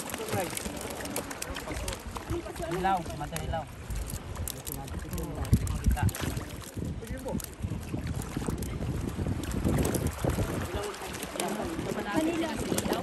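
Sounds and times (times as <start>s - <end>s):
water slapping against boat: 0.0s - 13.0s
wind buffeting microphone: 0.0s - 13.0s.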